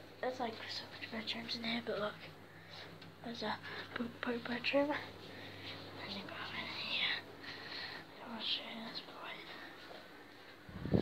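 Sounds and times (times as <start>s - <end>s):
person whispering: 0.4s - 2.2s, 5.9s - 7.3s, 8.1s - 9.9s.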